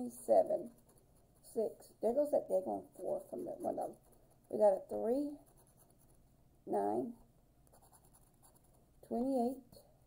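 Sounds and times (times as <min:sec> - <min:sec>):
scraping a scratch-off ticket: 0:00.3 - 0:06.0.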